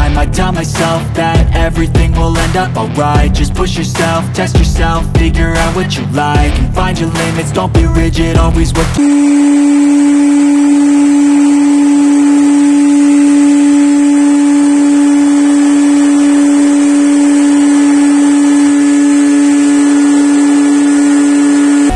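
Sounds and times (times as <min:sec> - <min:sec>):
electric blower running: 0:08.8 - 0:21.9.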